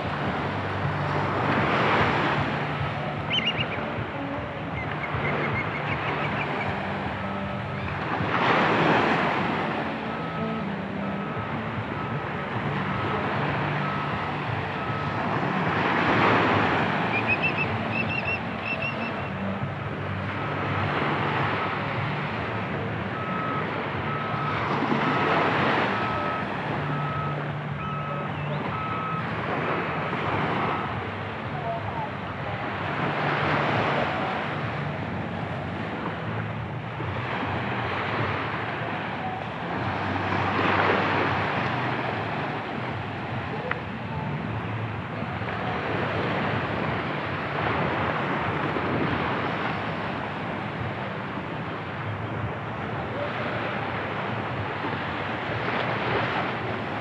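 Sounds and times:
vehicle reversing alarm beeping: 0:00.0 - 0:07.9, 0:09.4 - 0:36.4, 0:38.1 - 0:47.0
low engine hum: 0:00.0 - 0:57.0
small waves breaking on sand: 0:00.0 - 0:57.0.

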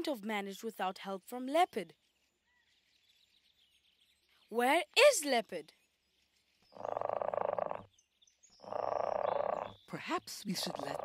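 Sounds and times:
leopard snoring: 0:06.8 - 0:07.9, 0:08.6 - 0:09.8.

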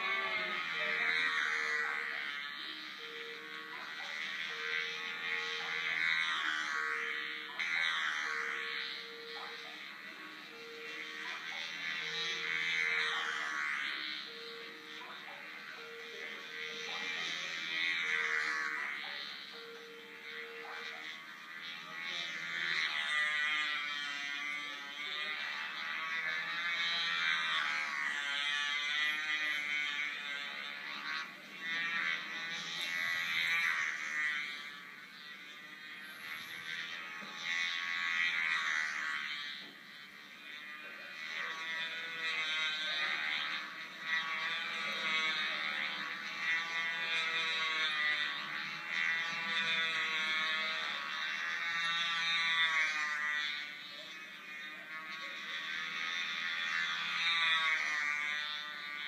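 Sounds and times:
model airplane engine buzzing: 0:00.0 - 0:59.0.

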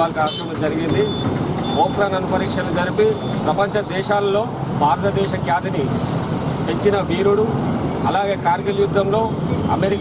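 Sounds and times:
man speaking into a microphone: 0:00.0 - 0:06.0, 0:06.7 - 0:10.0
street traffic noise: 0:00.0 - 0:10.0.

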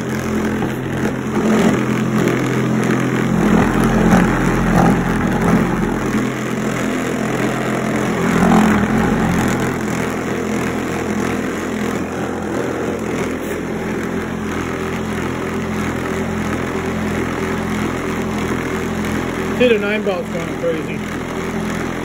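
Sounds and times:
motor humming: 0:00.0 - 0:22.0.

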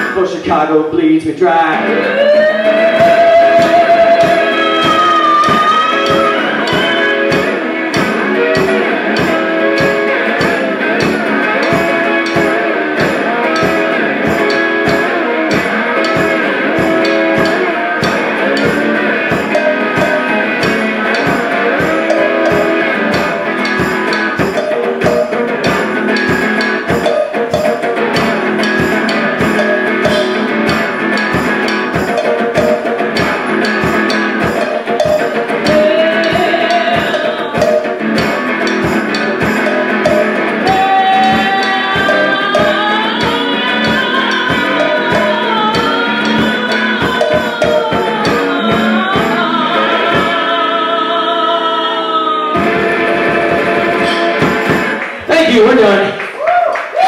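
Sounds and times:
rock band playing: 0:00.0 - 0:57.0.

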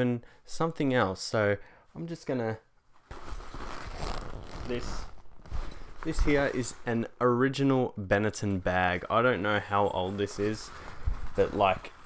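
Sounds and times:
fabric bag rustling: 0:03.1 - 0:07.0, 0:09.5 - 0:12.0.

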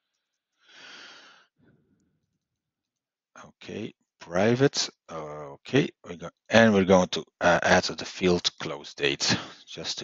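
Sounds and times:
breath into microphone: 0:00.6 - 0:01.8.

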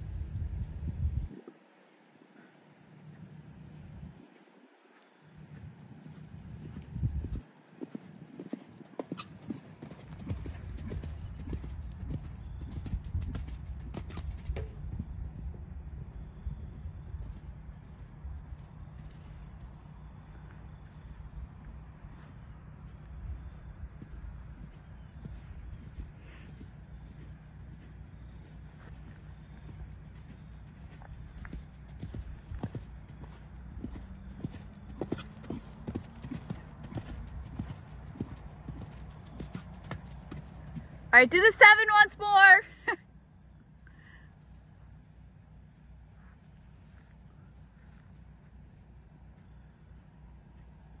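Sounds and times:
horse hoofbeats on sand: 0:05.3 - 0:42.0.

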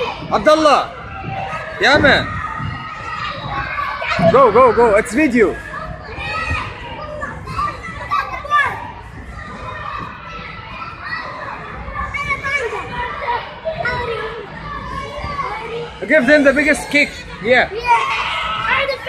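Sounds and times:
children shouting and chattering: 0:00.0 - 0:19.0.

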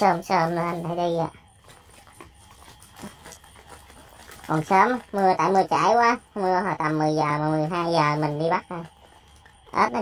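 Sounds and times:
dry straw rustling: 0:01.6 - 0:05.5.

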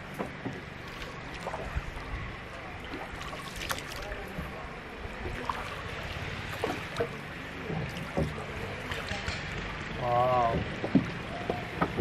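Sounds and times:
paddle pulling through water: 0:00.0 - 0:12.0
water lapping: 0:00.0 - 0:12.0
water splashes: 0:00.0 - 0:12.0.

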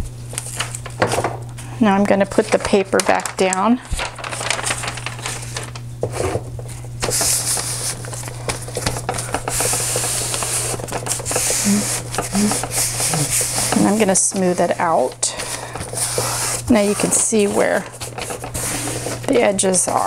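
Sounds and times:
steady low hum: 0:00.0 - 0:20.0
wrapping paper rustling: 0:00.0 - 0:20.0.

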